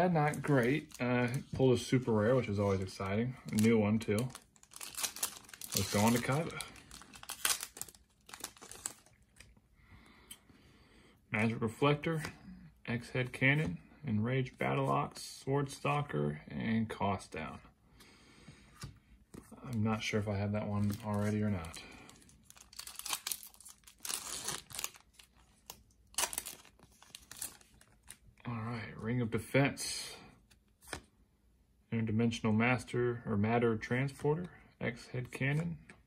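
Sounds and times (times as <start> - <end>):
foil wrapper crinkling: 3.5 - 9.1, 22.1 - 28.2.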